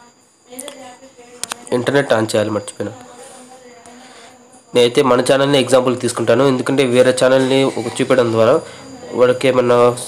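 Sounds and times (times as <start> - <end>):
faint buzzing hum: 0.0 - 10.0
man speaking: 4.8 - 10.0.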